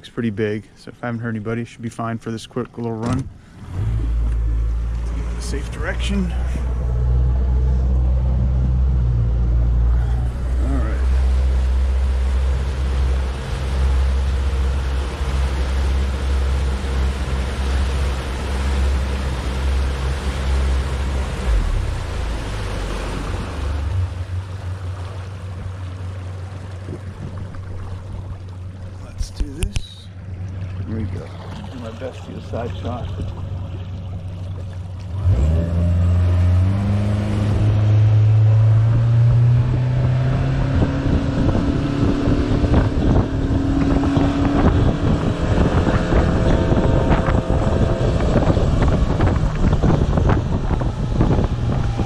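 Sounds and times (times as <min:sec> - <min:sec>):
outboard engine running: 0:02.6 - 0:52.0
water rushing against hull: 0:02.6 - 0:52.0.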